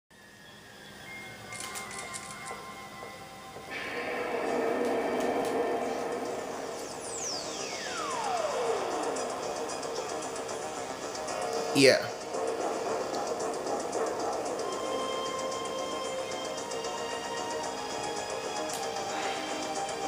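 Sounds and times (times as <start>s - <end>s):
music through small tv speaker: 0.3s - 20.0s
whistle-like tone sweeping down: 3.6s - 10.2s.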